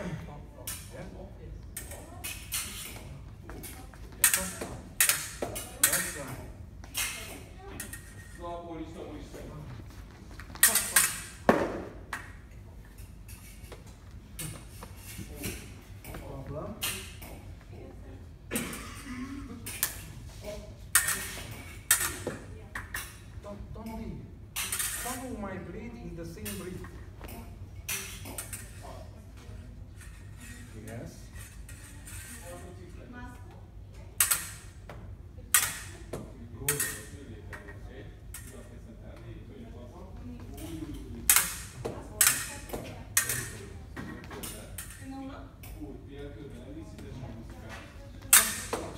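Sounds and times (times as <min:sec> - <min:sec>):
fencing blades clinking: 0:01.7 - 0:08.5, 0:10.4 - 0:11.5, 0:12.1 - 0:17.5, 0:19.6 - 0:20.2, 0:20.9 - 0:24.0, 0:24.6 - 0:25.4, 0:26.4 - 0:29.1, 0:34.2 - 0:34.8, 0:35.5 - 0:36.1, 0:36.7 - 0:38.7, 0:40.5 - 0:45.8, 0:48.3 - 0:48.9.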